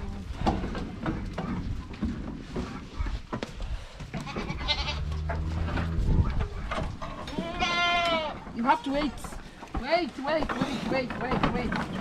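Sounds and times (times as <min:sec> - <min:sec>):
goats bleating: 0:04.2 - 0:05.6, 0:07.2 - 0:08.4.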